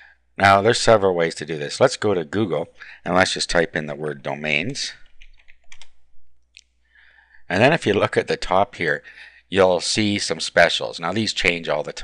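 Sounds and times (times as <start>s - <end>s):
keyboard keys clicking: 5.0s - 6.0s.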